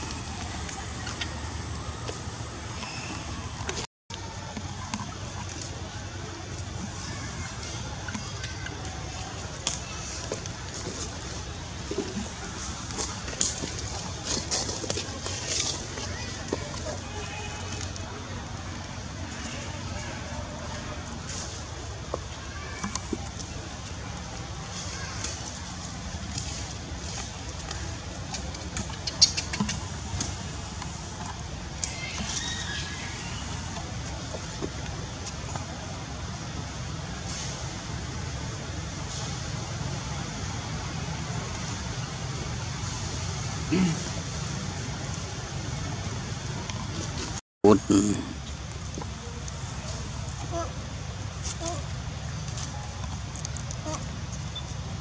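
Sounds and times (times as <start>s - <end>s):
infant monkey squeaking: 28.9s - 29.8s.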